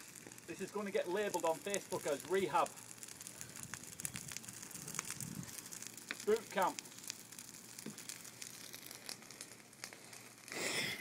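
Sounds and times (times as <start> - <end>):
bonfire crackling: 0.0 - 11.0
fire pops: 0.0 - 11.0.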